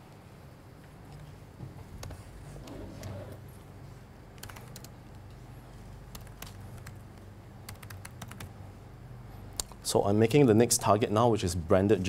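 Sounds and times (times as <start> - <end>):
laptop keyboard typing: 4.4 - 5.2, 6.0 - 8.6.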